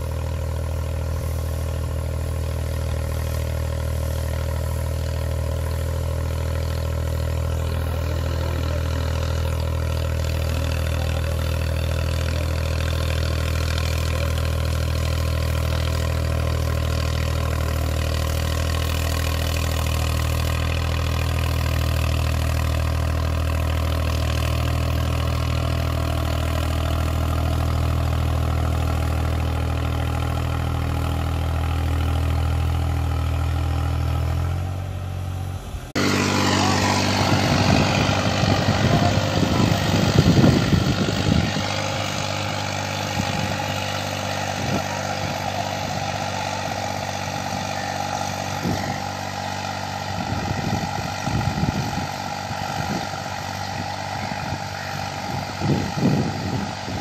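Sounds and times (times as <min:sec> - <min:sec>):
tractor diesel engine under load: 0:00.0 - 0:57.0.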